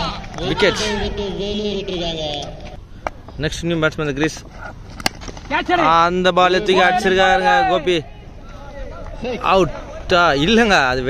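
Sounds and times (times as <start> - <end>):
cricket bat hitting ball: 4.9 - 5.8.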